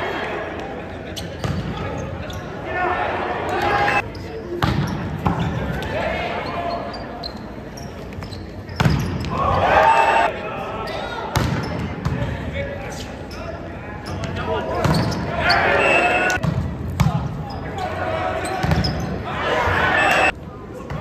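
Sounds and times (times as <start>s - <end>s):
people shouting and cheering: 0.0s - 0.9s, 2.6s - 4.0s, 9.3s - 11.4s, 15.3s - 16.4s, 17.7s - 20.4s
volleyball hits echoing: 11.3s - 12.3s.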